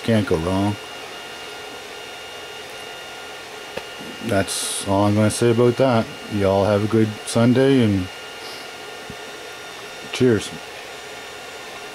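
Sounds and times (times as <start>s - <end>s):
printer fans and motors whirring: 0.0s - 11.9s.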